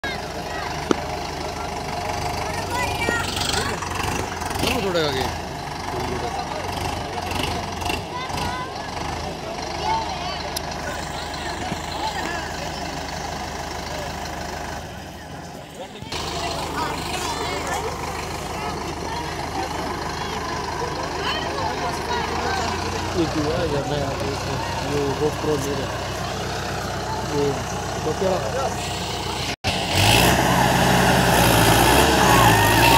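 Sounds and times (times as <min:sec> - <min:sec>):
crowd of people talking: 0:00.0 - 0:30.2, 0:31.7 - 0:32.9
tractor diesel engine running: 0:00.0 - 0:32.9.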